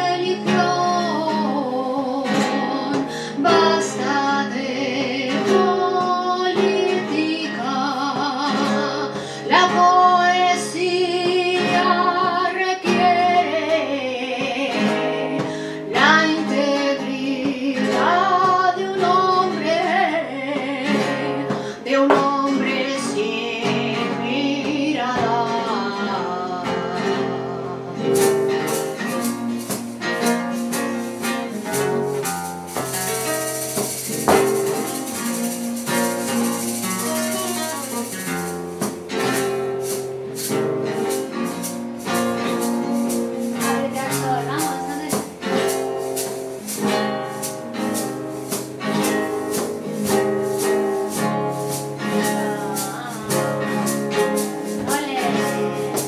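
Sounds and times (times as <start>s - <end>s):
guitar strummed fast: 0.0s - 56.0s
woman singing flamenco: 0.0s - 56.0s.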